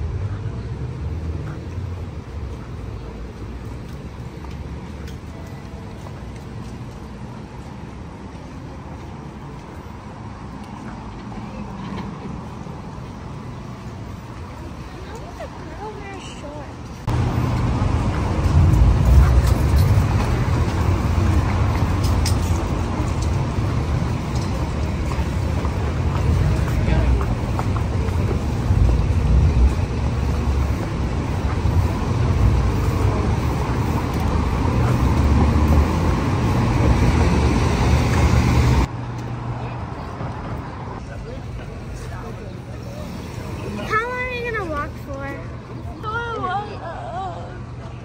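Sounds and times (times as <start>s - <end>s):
cars passing: 0.0s - 48.0s
street noise: 0.0s - 48.0s
heavy low rumble: 17.0s - 38.9s.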